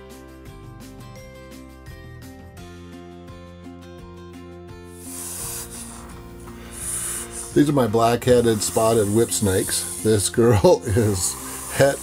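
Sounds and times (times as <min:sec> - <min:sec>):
soft background music: 0:00.0 - 0:12.0
snake hissing: 0:04.8 - 0:12.0.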